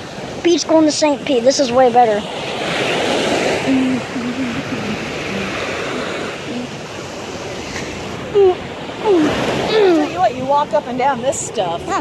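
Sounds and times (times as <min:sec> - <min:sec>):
waves washing onto sandy beach: 0:00.0 - 0:12.0
person speaking: 0:03.7 - 0:05.6.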